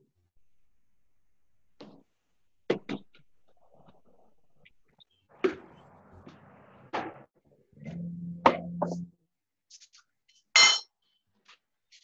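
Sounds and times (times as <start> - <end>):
ringing clink: 10.6 - 10.9.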